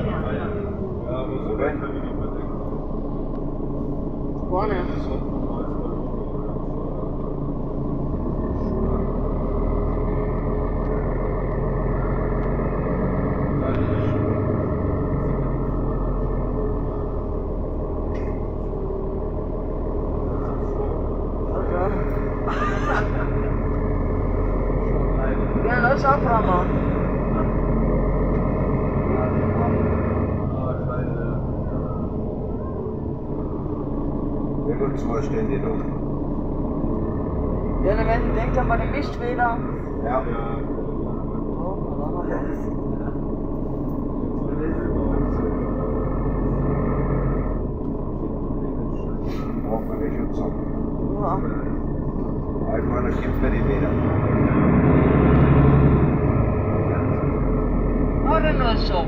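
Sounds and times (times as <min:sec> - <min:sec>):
passengers' voices: 0:00.0 - 0:54.8, 0:55.4 - 0:59.0
bus engine drone: 0:00.0 - 0:59.0
road noise: 0:00.0 - 0:59.0.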